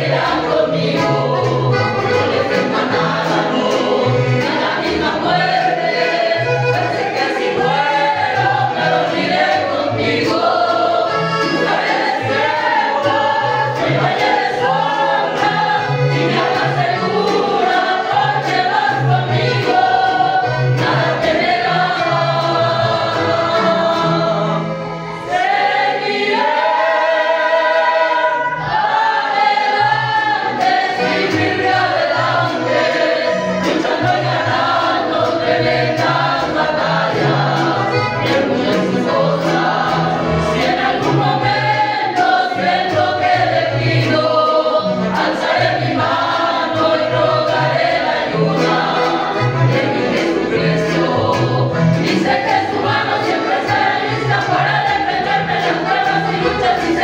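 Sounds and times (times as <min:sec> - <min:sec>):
choir singing a hymn: 0:00.0 - 0:57.0.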